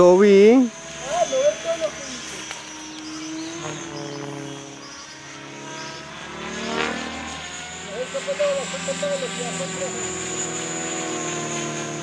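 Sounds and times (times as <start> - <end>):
model helicopter rotor whine: 0.0 - 12.0.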